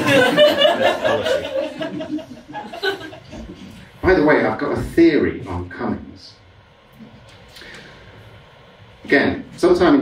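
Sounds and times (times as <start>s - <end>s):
audience chuckling: 0.0s - 3.7s.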